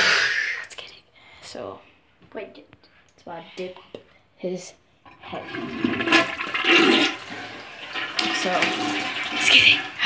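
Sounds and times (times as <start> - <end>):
toilet flushing: 5.1 - 10.0.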